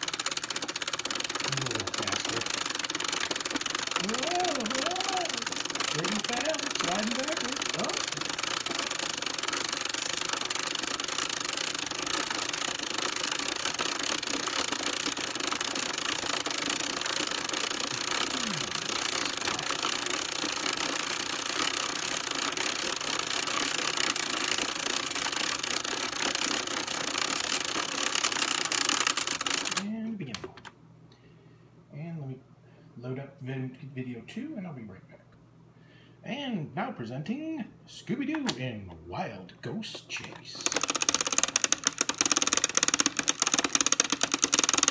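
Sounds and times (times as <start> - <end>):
hand-cranked projector clatter: 0.0 - 29.8, 39.9 - 44.9.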